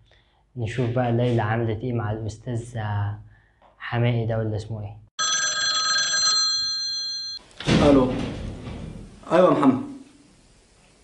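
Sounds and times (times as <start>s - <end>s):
desk telephone ringing: 5.2s - 7.4s.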